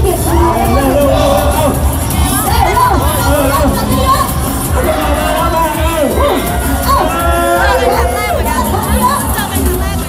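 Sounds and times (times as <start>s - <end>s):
crowd shouting and cheering: 0.0s - 10.0s
loud dance music: 0.0s - 10.0s.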